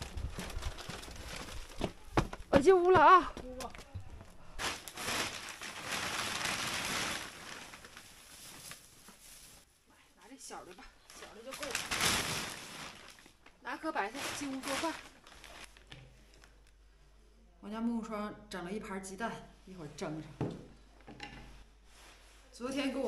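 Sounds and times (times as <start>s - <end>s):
plastic bags rustling and crinkling: 0.0s - 2.6s, 3.7s - 9.8s, 11.1s - 16.7s.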